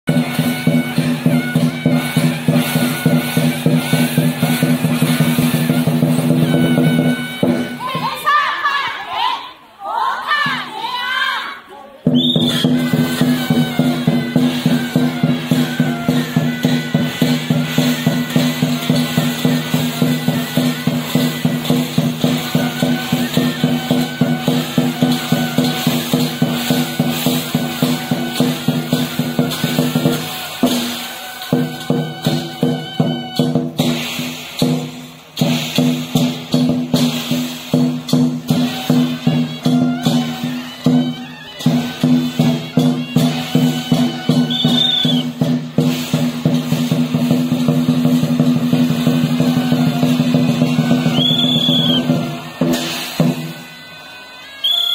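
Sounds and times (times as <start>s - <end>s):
rhythmic percussion music: 0.0s - 54.9s.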